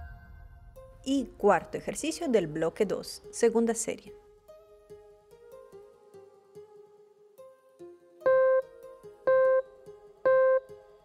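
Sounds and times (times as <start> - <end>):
soft guitar music: 3.2 - 11.0
timer beeps: 8.3 - 8.7, 9.3 - 9.7, 10.3 - 10.7.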